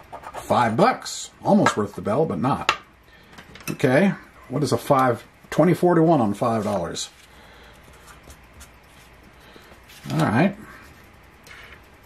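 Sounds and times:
marker scratching on paper: 0:00.0 - 0:00.6.

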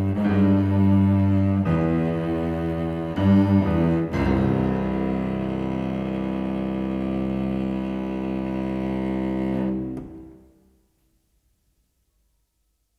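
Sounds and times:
cello holding a long note: 0:00.0 - 0:10.5.

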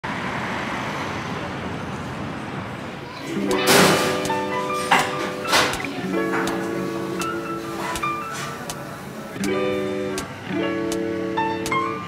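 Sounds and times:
city street traffic: 0:00.0 - 0:12.0
background guitar music: 0:03.3 - 0:12.0.

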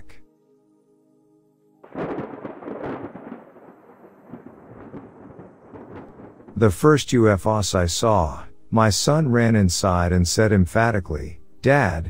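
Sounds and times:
thunder clap and rumble: 0:01.9 - 0:07.0.

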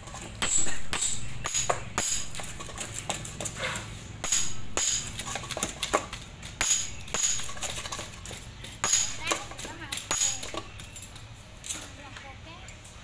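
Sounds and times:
metal rods knocking and clinking: 0:00.0 - 0:03.6, 0:04.2 - 0:11.2.

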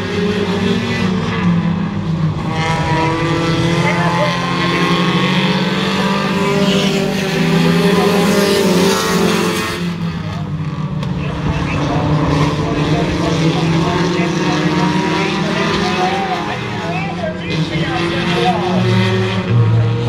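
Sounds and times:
race car engines passing: 0:00.0 - 0:20.0.

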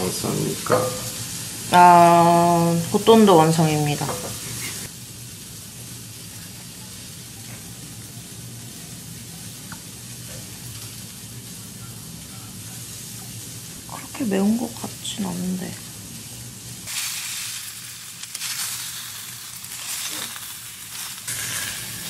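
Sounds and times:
meat sizzling in a frying pan: 0:00.0 - 0:22.0.

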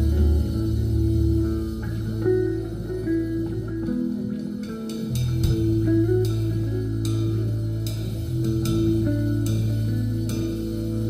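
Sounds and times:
drums: 0:00.0 - 0:11.0
electric bass notes: 0:00.0 - 0:11.0
electric guitar melody: 0:00.0 - 0:11.0.

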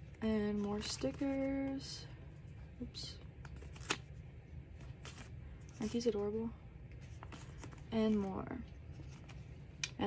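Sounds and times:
sticker sheets rustling: 0:00.4 - 0:02.0, 0:07.0 - 0:09.5.

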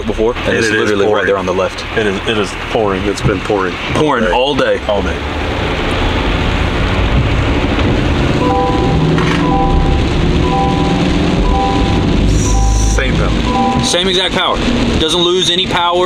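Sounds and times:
heavy rain rumble: 0:00.0 - 0:16.0
road noise in vehicle cab: 0:00.0 - 0:16.0
repeating electronic music notes: 0:08.3 - 0:14.8.

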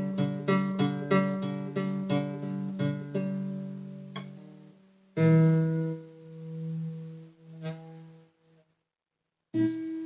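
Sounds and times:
acoustic guitar notes plucked: 0:00.0 - 0:08.6, 0:09.6 - 0:10.0.

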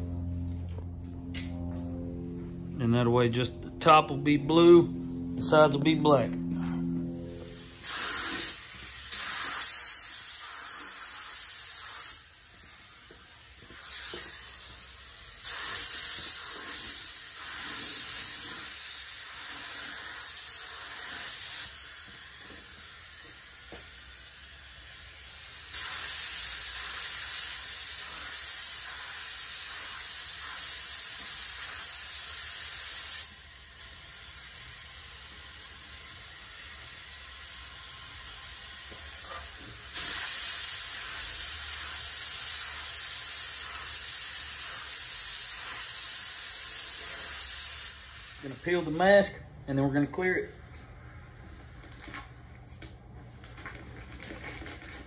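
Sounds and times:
paint spray gun hissing: 0:07.4 - 0:49.2.

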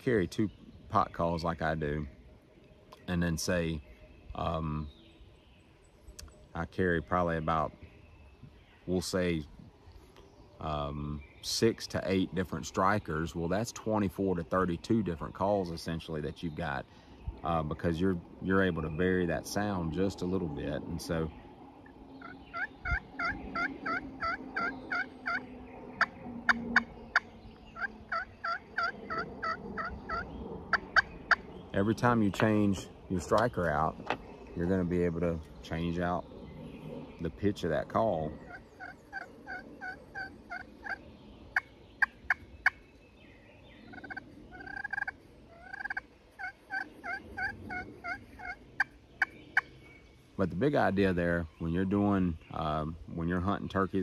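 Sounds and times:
turkey call yelps: 0:22.2 - 0:31.4, 0:38.4 - 0:41.0, 0:43.9 - 0:49.7
turkey call clucks: 0:22.2 - 0:31.5, 0:38.3 - 0:42.8, 0:43.9 - 0:49.7.

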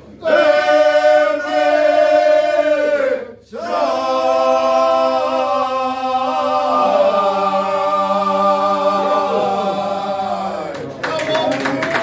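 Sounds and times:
men singing unaccompanied folk song: 0:03.6 - 0:10.7.

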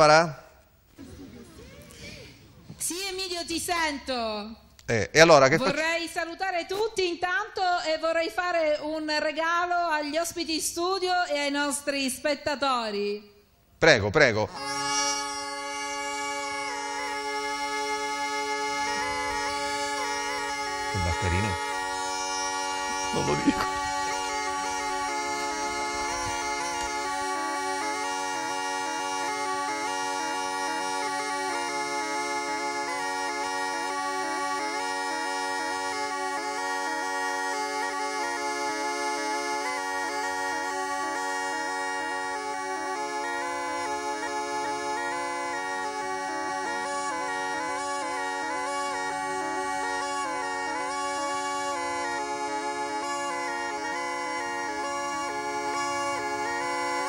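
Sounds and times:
bagpipe melody over drone: 0:14.5 - 0:57.0.

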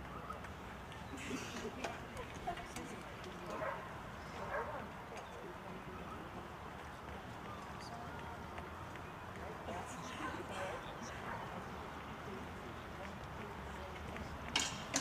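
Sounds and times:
faint murmuring voices: 0:00.0 - 0:15.0.

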